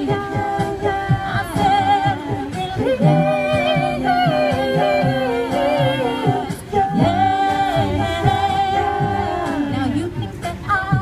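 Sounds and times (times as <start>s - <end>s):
a cappella group singing: 0.0s - 11.0s
low beat: 0.0s - 11.0s.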